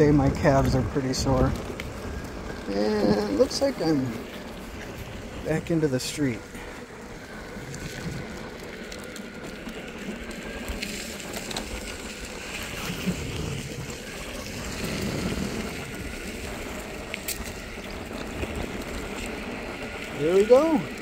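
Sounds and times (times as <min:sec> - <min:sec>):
skateboard wheels rolling over dirt: 0:00.0 - 0:21.0.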